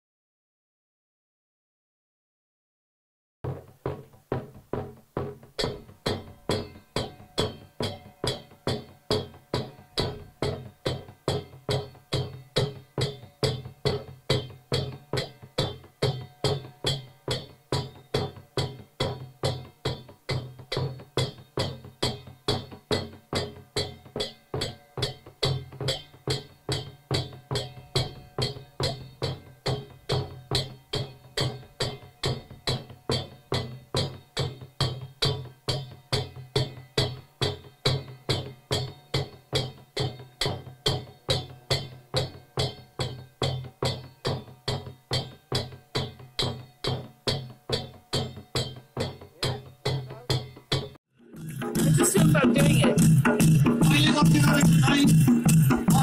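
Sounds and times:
hand drum beating steadily: 3.5s - 56.0s.

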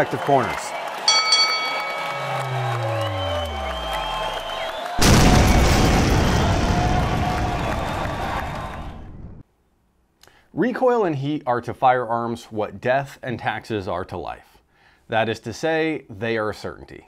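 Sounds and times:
boxing ring bell: 1.1s - 2.9s
deep tone sliding downward: 1.1s - 6.8s
loud boom-like burst: 2.1s - 9.4s.

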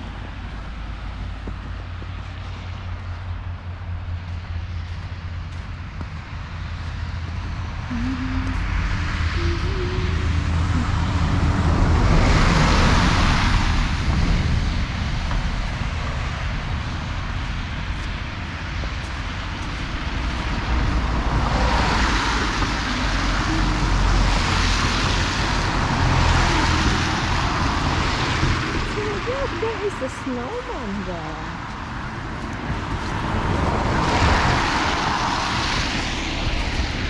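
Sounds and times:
low traffic rumble: 0.0s - 37.0s
tyres on wet road: 0.0s - 37.0s.

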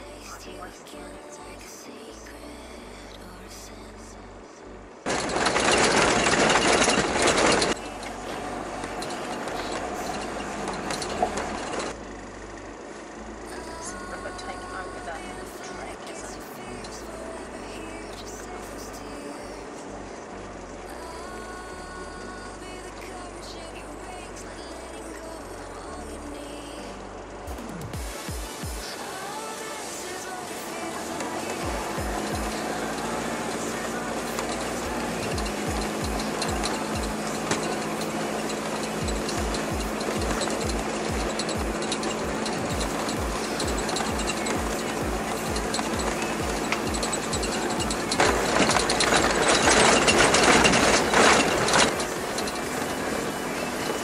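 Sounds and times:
background music: 0.0s - 54.0s
vehicle noise: 0.0s - 54.0s.

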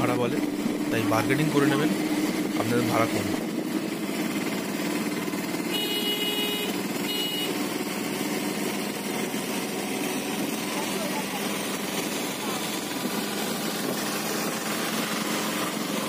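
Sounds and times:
road noise: 0.0s - 16.0s
small engine running: 0.0s - 16.0s
vehicle horn: 5.6s - 7.6s.

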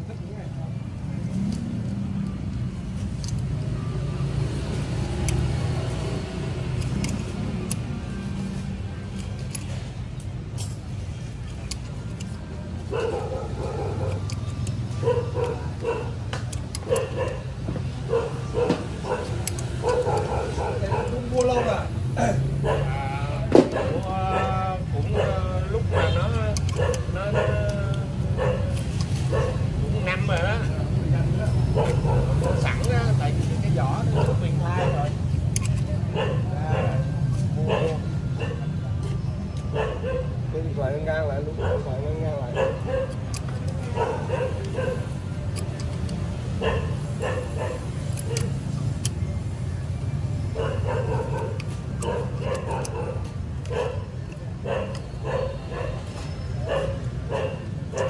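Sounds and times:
road traffic rumble: 0.0s - 58.0s
ratchet wrench clicking: 4.7s - 8.0s, 50.7s - 55.4s.

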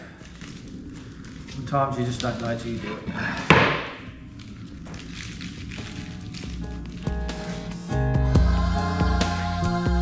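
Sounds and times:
background music: 5.0s - 10.0s.

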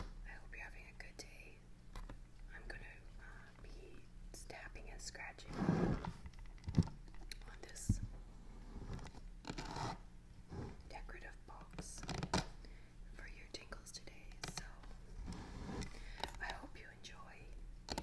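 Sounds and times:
fingernails scratching and tapping box: 8.9s - 10.0s.

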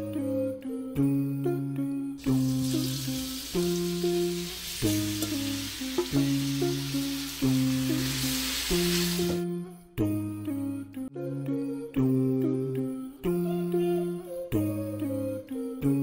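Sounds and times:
meat sizzling in hot oil: 2.2s - 9.4s.

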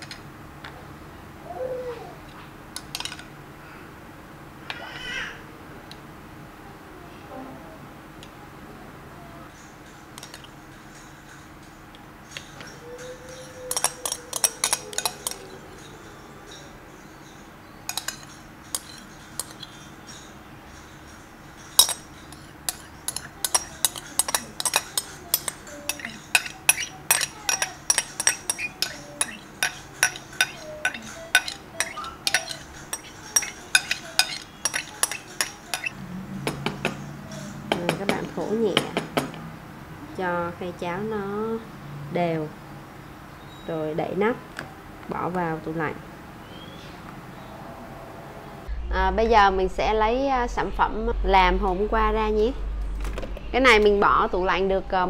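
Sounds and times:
metal spoon scraping glass bowl: 12.3s - 16.7s, 17.9s - 36.0s.

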